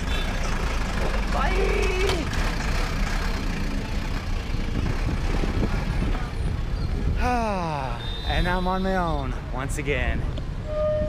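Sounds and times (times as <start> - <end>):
bus engine drone: 0.0 - 8.1
street traffic: 0.0 - 11.0.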